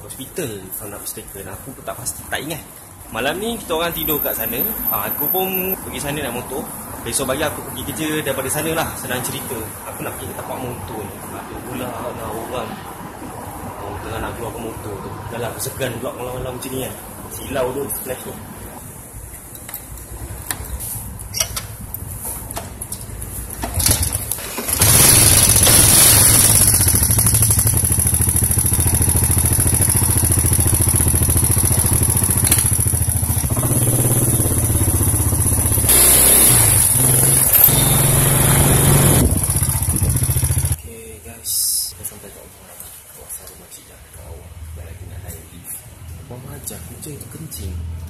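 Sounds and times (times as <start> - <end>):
motorcycle engine idling: 24.8 - 36.1, 36.8 - 40.8.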